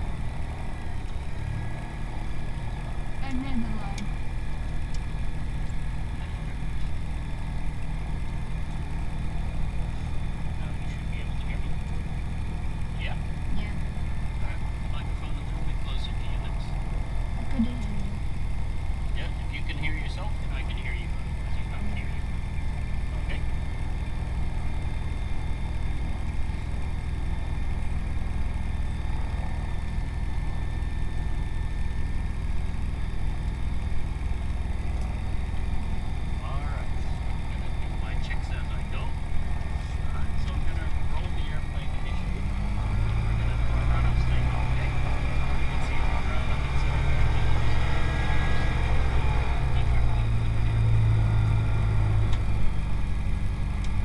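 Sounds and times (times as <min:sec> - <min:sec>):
propeller aircraft engine drone: 0:00.0 - 0:54.0.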